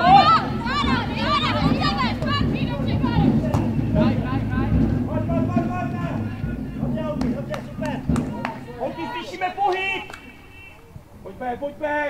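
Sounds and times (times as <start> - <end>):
sharp knocks: 0.0 - 10.3
distant voices calling out: 0.0 - 11.4
low rumble: 0.4 - 9.6.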